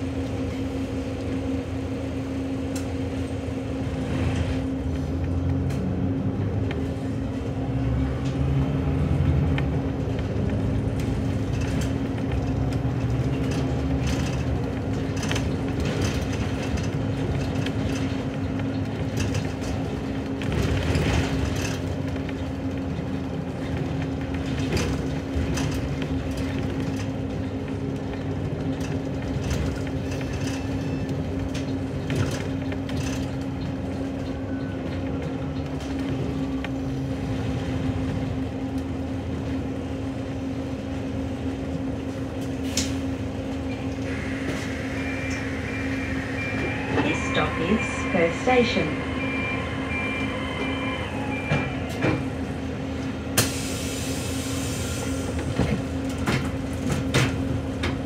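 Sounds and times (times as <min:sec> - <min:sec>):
bus engine humming: 0:00.0 - 0:58.0.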